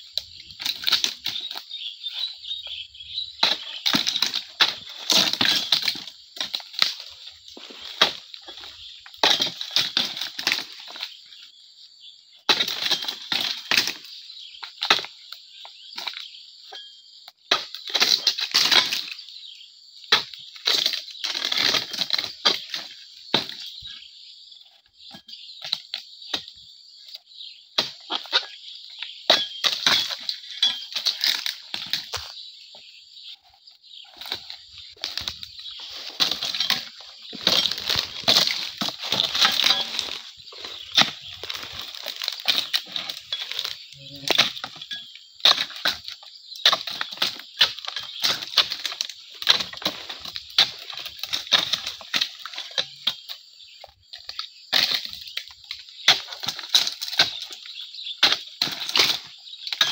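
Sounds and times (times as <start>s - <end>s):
chisel chopping palm fronds: 3.4s - 7.0s, 9.2s - 10.7s, 36.1s - 53.2s, 54.3s - 59.9s
palm fronds rustling: 33.4s - 45.7s.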